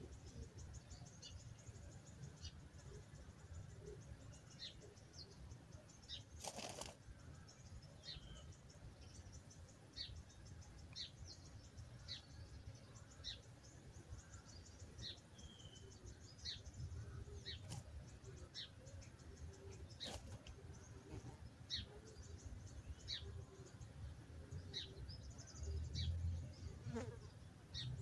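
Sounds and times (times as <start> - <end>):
small birds chirping: 0.0 - 28.0.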